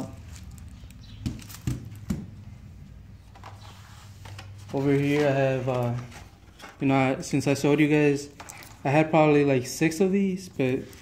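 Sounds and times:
cardboard packs knocking on table: 1.2s - 2.4s.

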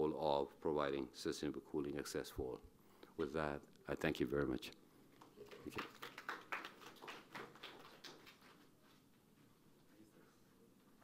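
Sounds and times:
light applause: 5.2s - 9.0s.

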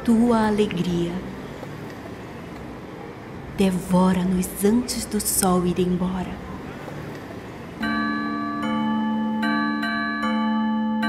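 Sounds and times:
vibraphone notes ringing: 7.8s - 11.0s.

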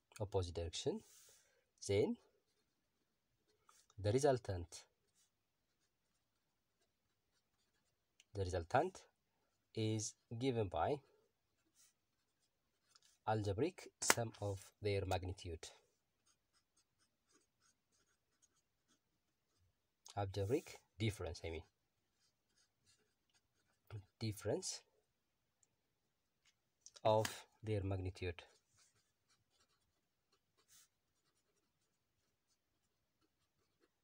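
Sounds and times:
pen scratching on paper: 5.0s - 8.1s, 11.5s - 13.2s, 15.9s - 19.8s, 21.6s - 24.2s, 28.5s - 34.0s.

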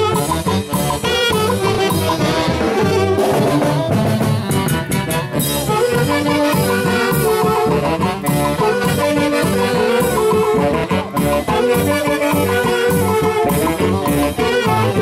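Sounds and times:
brass band dance music: 0.0s - 15.0s.

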